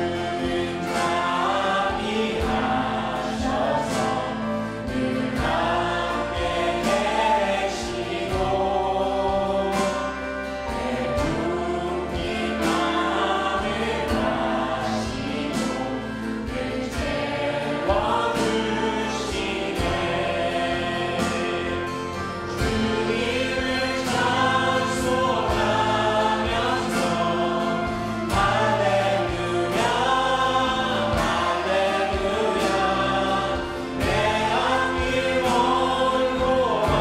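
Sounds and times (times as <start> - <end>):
acoustic guitar: 0.0 - 37.0
group singing worship song: 0.0 - 37.0.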